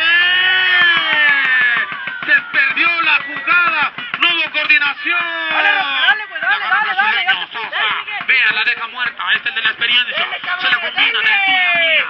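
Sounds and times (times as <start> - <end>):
man commentating excitedly: 2.2 - 12.0.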